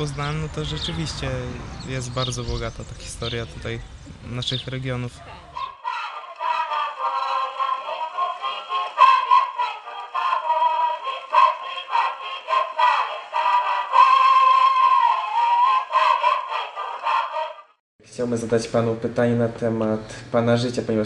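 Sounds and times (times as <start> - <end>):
tinny gramophone music: 5.8 - 17.7.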